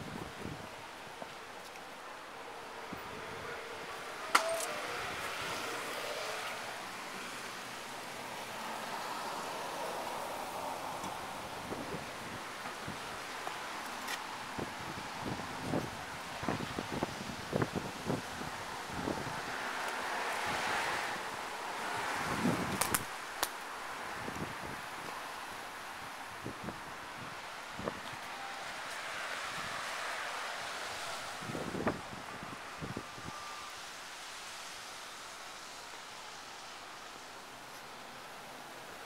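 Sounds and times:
wind on microphone: 0.0s - 0.8s, 14.4s - 19.6s, 21.8s - 23.2s, 30.9s - 33.7s.

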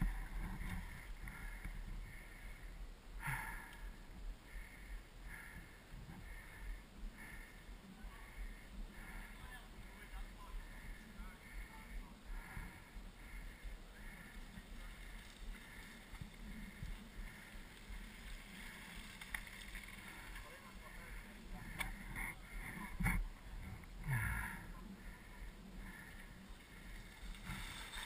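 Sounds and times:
low background noise: 0.0s - 28.0s
faint distant voices: 6.1s - 19.2s, 19.9s - 28.0s
mountain bike rolling over rocks: 14.0s - 24.1s, 25.8s - 28.0s.

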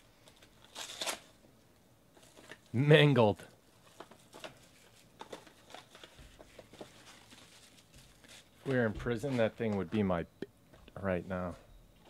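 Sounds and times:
plastic wrapping crinkling: 3.7s - 9.6s.

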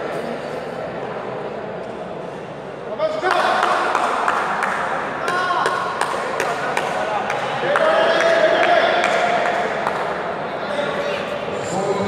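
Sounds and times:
players shouting in echoing hall: 3.0s - 12.0s.

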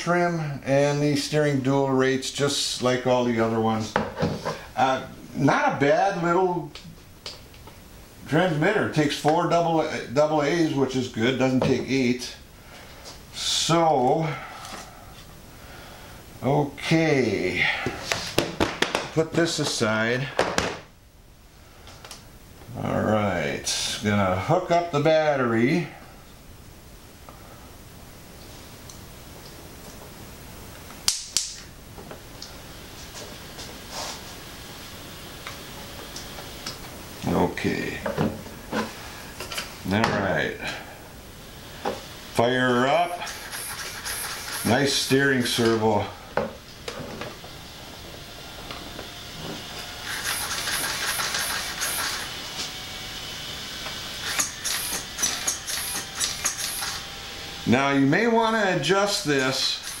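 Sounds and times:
steering servo whirring: 47.9s - 57.7s, 59.7s - 60.0s.

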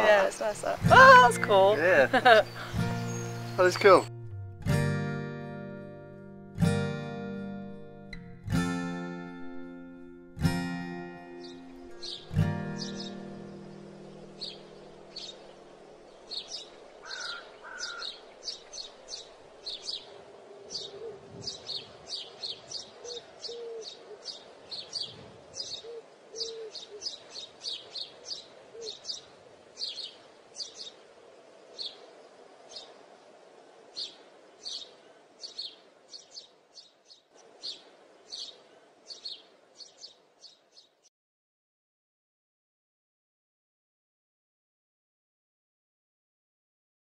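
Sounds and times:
small birds chirping: 0.0s - 4.1s, 11.3s - 41.1s.

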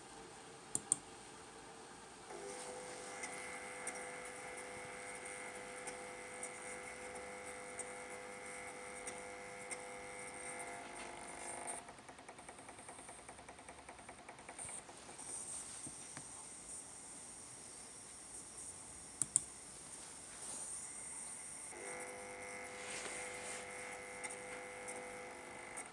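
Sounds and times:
electric actuator whining: 20.7s - 25.9s.

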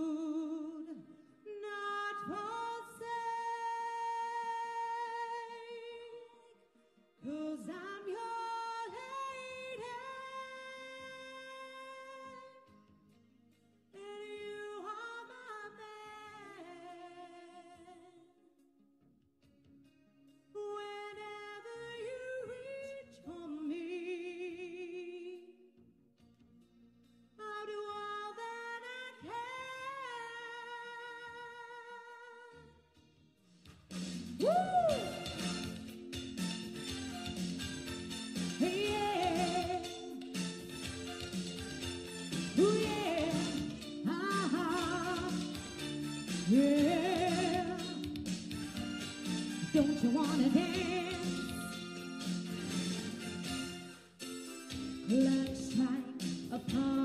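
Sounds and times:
woman singing into microphone: 0.0s - 6.6s, 7.2s - 12.7s, 14.0s - 18.3s, 20.6s - 25.5s, 27.4s - 32.6s, 34.4s - 35.4s, 38.6s - 40.2s, 42.5s - 45.6s, 46.5s - 48.0s, 49.7s - 51.7s, 55.0s - 57.0s.

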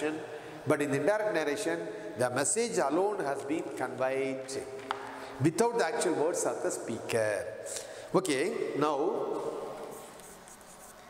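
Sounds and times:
chalk scratching on blackboard: 9.8s - 11.0s.

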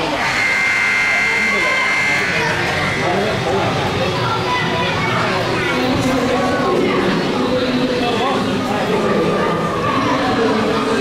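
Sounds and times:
spectators chattering: 0.0s - 11.0s
electric horn buzzing: 0.2s - 3.6s.

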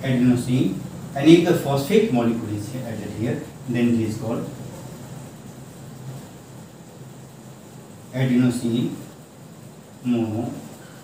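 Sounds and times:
faint hiss: 0.0s - 11.0s
steady low hum: 0.0s - 11.0s.

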